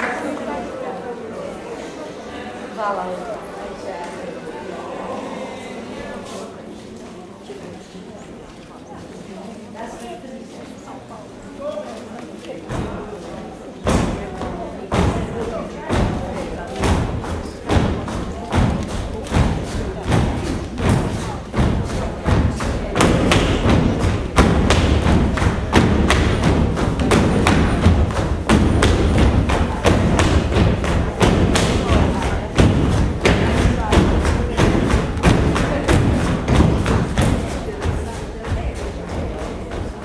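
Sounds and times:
feet stamping on a stage: 0:13.9 - 0:40.0.

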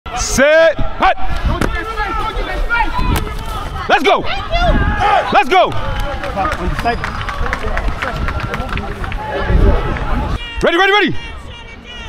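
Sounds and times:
players calling and chatting: 0:00.1 - 0:12.0
low wind rumble on microphone: 0:00.8 - 0:10.4.

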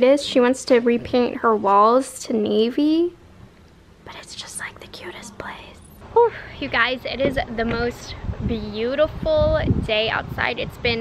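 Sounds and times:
person whispering softly: 0:04.1 - 0:06.0
person talking: 0:04.1 - 0:11.0.

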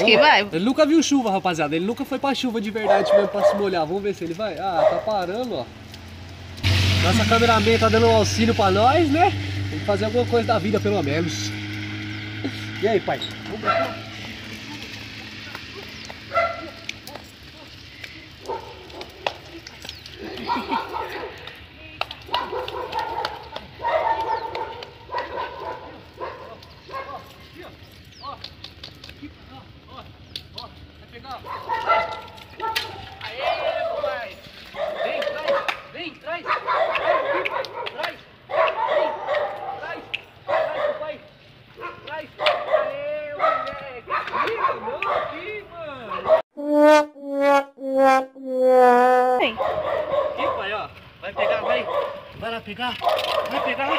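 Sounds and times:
young dog barking and yipping: 0:00.0 - 0:00.6, 0:02.8 - 0:03.8, 0:04.6 - 0:05.4, 0:13.3 - 0:14.2, 0:15.8 - 0:17.3, 0:18.4 - 0:19.6, 0:20.2 - 0:21.5, 0:22.3 - 0:27.5, 0:31.4 - 0:46.4, 0:48.7 - 0:52.3, 0:53.0 - 0:53.9.

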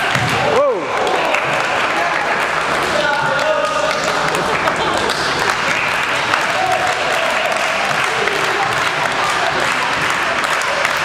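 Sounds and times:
people clapping: 0:00.0 - 0:11.0.

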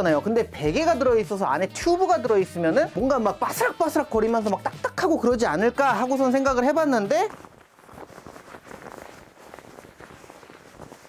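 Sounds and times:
fabric rubbing: 0:02.3 - 0:11.0
plastic tube crinkling: 0:06.0 - 0:11.0.

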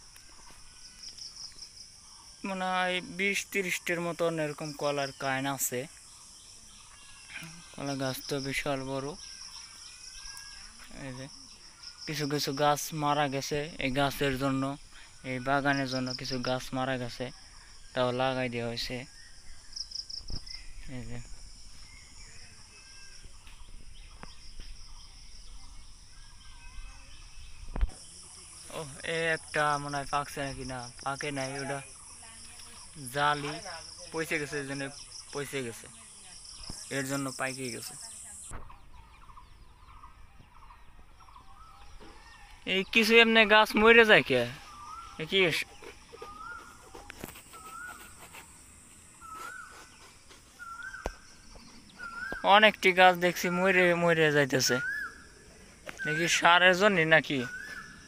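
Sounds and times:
insects chorus: 0:00.0 - 0:58.0
faint bird calls: 0:13.7 - 0:58.0.

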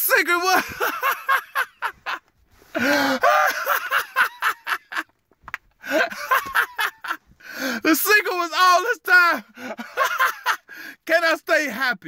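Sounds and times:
man laughing hard: 0:00.3 - 0:05.1, 0:05.8 - 0:07.8, 0:09.4 - 0:10.8.

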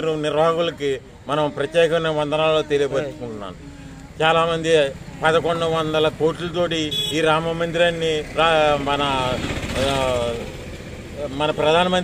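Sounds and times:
man speaking: 0:00.0 - 0:10.5
motor vehicle running: 0:00.0 - 0:12.0.

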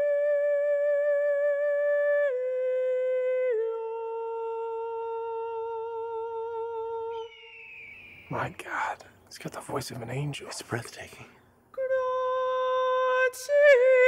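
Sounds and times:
person singing unaccompanied: 0:00.0 - 0:07.4, 0:11.7 - 0:14.0.

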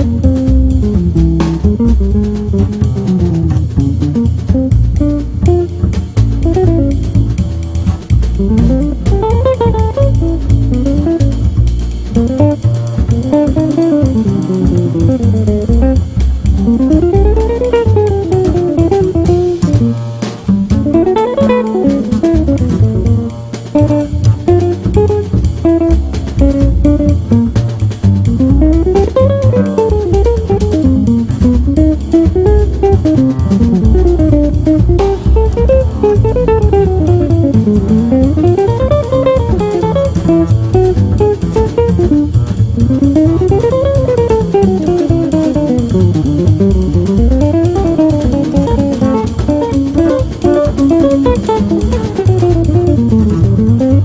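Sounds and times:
jazz guitar phrases: 0:00.0 - 0:54.0
walking bass: 0:00.0 - 0:54.0.

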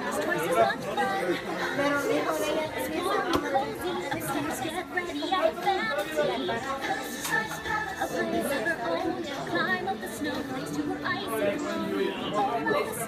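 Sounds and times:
voices over background music: 0:00.0 - 0:13.0.

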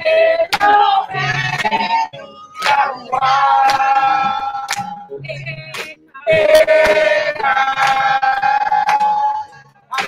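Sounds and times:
woman singing through microphone: 0:00.0 - 0:10.0.

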